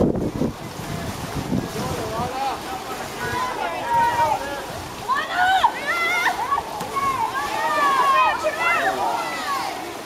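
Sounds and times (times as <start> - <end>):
wind buffeting microphone: 0.0 - 8.5.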